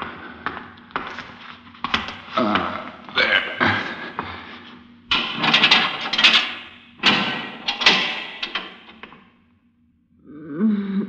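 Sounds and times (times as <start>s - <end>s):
scraping clattering noise: 5.1s - 9.2s.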